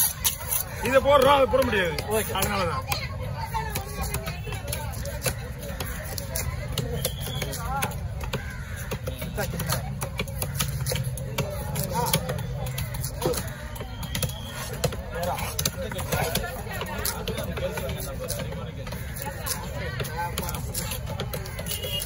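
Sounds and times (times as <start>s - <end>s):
market chatter: 0.0s - 22.0s.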